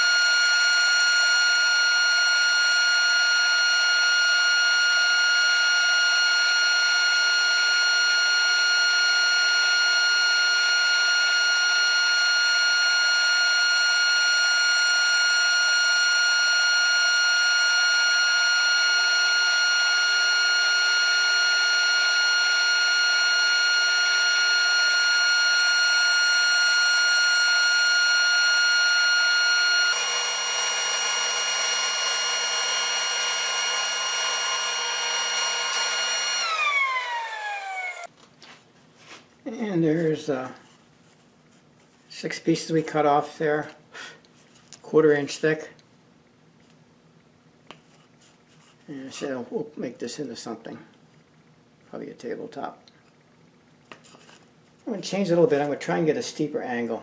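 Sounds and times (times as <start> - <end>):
shop vacuum whining: 0.0 - 38.1.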